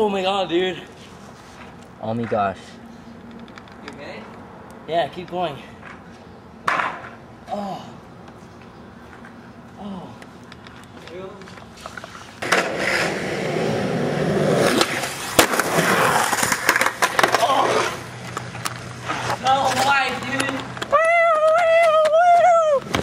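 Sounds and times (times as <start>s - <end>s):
skateboard wheels rolling on concrete: 0.0s - 7.2s, 8.2s - 23.0s
skateboard clacks: 14.7s - 23.0s.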